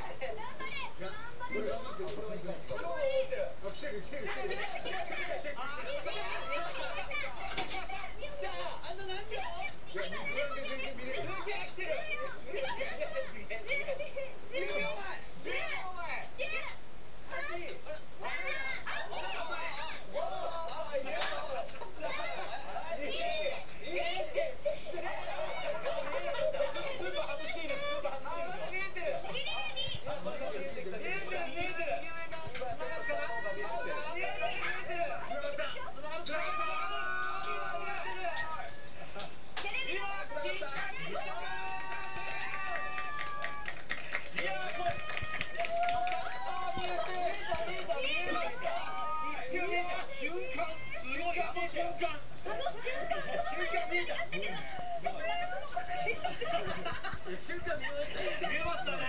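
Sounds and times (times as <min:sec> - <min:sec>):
voices talking on television: 0:00.0 - 0:59.0.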